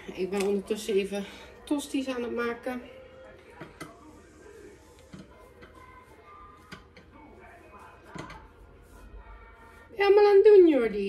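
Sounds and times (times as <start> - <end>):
faint background voice or music: 0.0 - 11.0.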